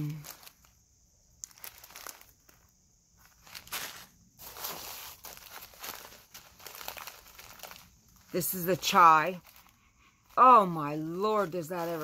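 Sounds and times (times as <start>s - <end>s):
cellophane bags crinkling: 0.0s - 0.8s, 1.4s - 12.0s.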